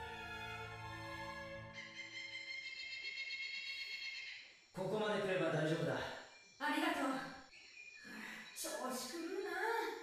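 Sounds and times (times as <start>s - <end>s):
soft orchestral music: 0.0s - 2.4s.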